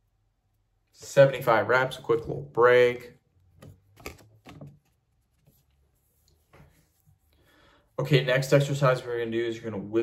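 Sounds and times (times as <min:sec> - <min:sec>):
faint soft noises: 0:00.0 - 0:09.5.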